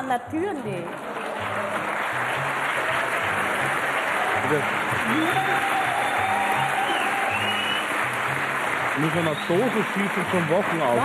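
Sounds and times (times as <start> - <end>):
audience applauding: 0.0 - 11.0.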